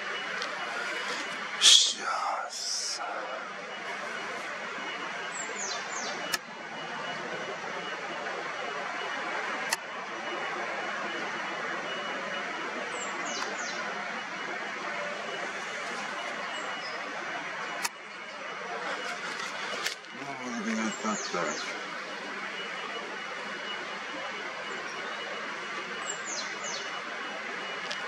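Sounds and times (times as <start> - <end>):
outdoor background noise: 0.0 - 28.0
bird chirps: 5.3 - 6.3, 13.0 - 13.8, 20.5 - 21.8, 26.0 - 27.0.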